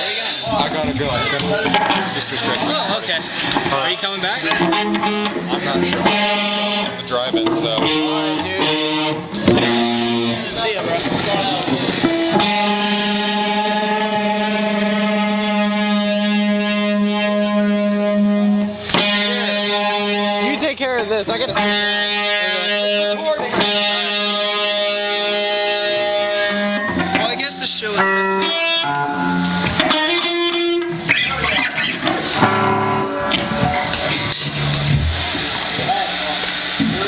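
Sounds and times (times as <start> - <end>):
distorted electric guitar: 0.0 - 37.0.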